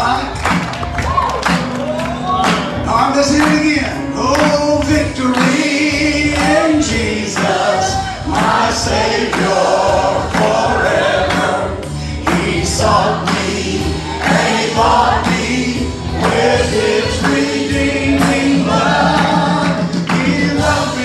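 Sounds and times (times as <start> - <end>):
band with bass guitar: 0.0 - 21.0
man singing into a microphone: 2.9 - 8.1
choir singing: 5.2 - 21.0.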